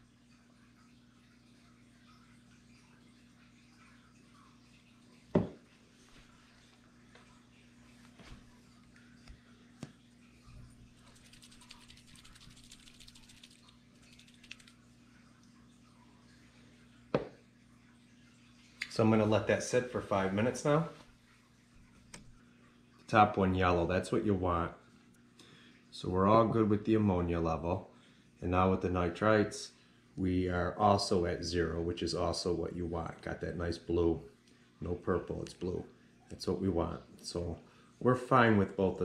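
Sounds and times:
low steady hum: 0.0 - 39.0
test tube set down on table: 5.3 - 5.6, 17.1 - 17.4
test tube rattling: 11.0 - 14.8.

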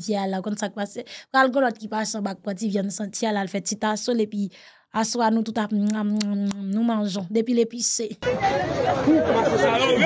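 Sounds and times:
babble of overlapping voices: 8.2 - 10.0.

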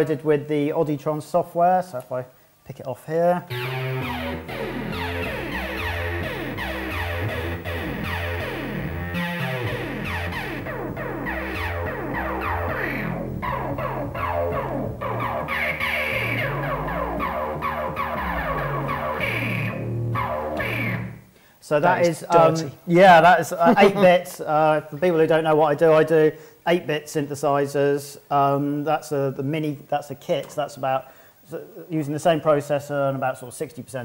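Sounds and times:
synthesizer sequenced pattern: 3.5 - 21.3.

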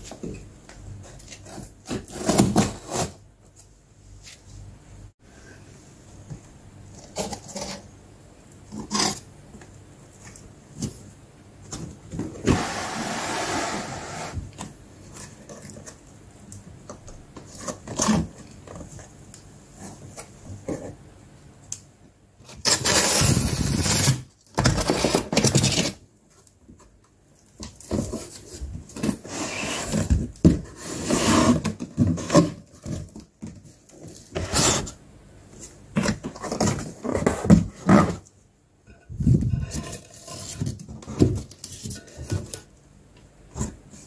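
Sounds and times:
cardboard box scraping and rustling: 1.4 - 3.2, 12.4 - 14.5, 27.9 - 33.1.

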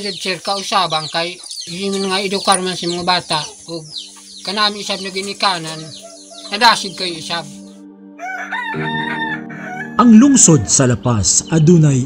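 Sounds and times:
rooster crowing: 5.7 - 6.5, 8.2 - 10.8.

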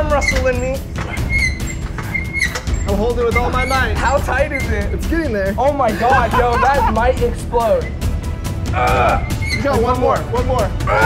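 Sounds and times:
hand air pump strokes: 0.0 - 5.1, 9.2 - 10.0
background music with low beat: 0.0 - 11.0
short high squeak: 0.2 - 4.8, 9.2 - 9.8.

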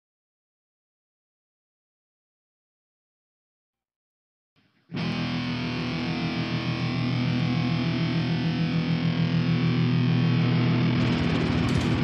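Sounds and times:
distorted electric guitar rock music: 4.9 - 12.0.

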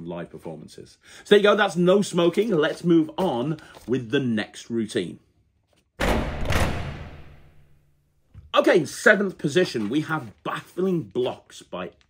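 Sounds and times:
heavy hit sound effect: 6.0 - 7.8.

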